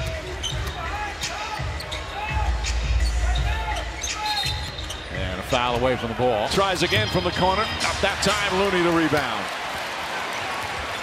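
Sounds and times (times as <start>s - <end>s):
sneaker squeaks: 0.0s - 5.4s
arena crowd noise: 0.0s - 11.0s.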